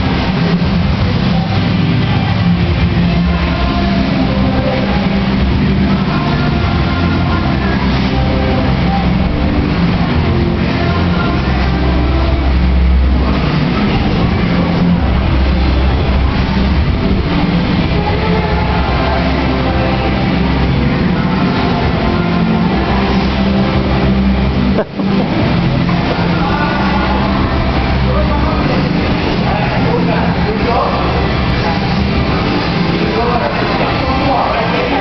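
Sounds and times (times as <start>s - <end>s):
moving walkway rumble and hum: 0.0s - 35.0s
people talking: 0.0s - 35.0s.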